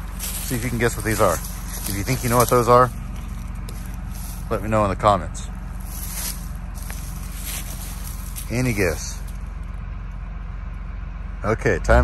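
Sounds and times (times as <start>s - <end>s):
engine idling rumble: 0.0s - 12.0s.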